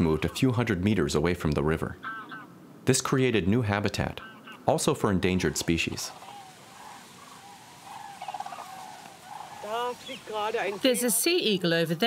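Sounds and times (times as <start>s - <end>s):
distant wild birds calling: 1.7s - 2.8s, 3.9s - 12.0s.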